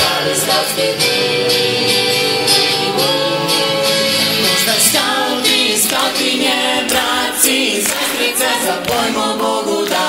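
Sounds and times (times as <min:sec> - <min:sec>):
group singing in chorus: 0:00.0 - 0:10.0.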